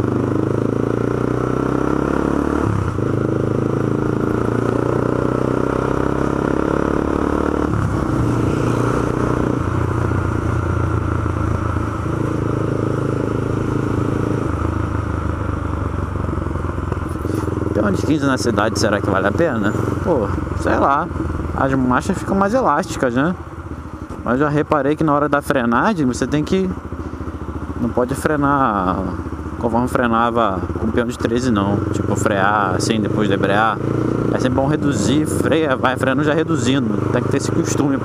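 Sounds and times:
motorcycle engine running: 0.0 - 38.0.

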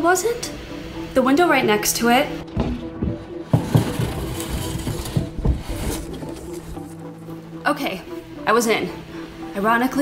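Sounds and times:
background music: 0.0 - 10.0
window rattling knocks and scrapes: 2.6 - 6.8.

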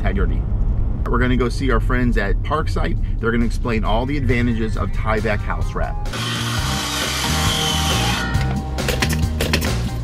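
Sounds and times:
background music: 3.2 - 10.0
circular saw cutting wood: 6.1 - 8.4.

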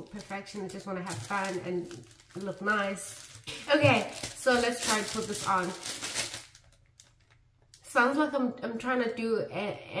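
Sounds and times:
crinkly rustling: 0.0 - 7.9.

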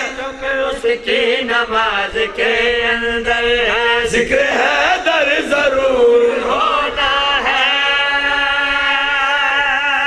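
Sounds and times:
men chanting together: 0.0 - 10.0.

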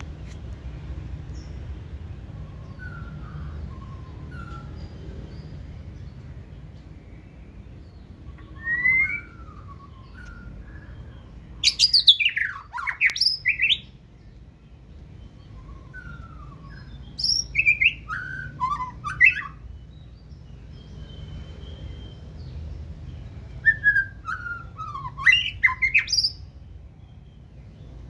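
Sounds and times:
songbird whistling song: 1.2 - 28.0.

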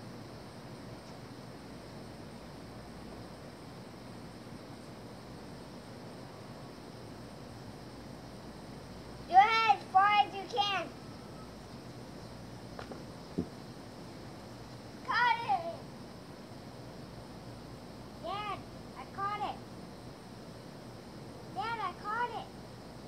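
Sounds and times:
background hiss: 0.0 - 23.0
child calling out: 9.3 - 11.0, 15.1 - 15.8, 18.2 - 19.6, 21.6 - 22.5.

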